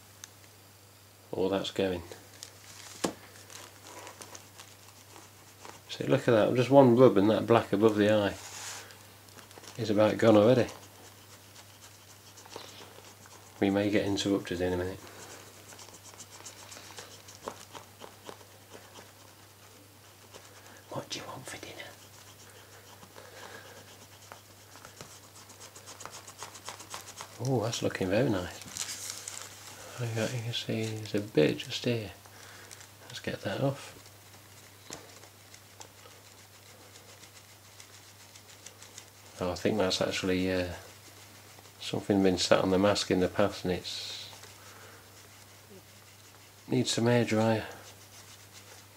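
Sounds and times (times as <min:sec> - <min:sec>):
eraser rubbing on plastic: 0:03.5 - 0:32.2, 0:33.0 - 0:48.9.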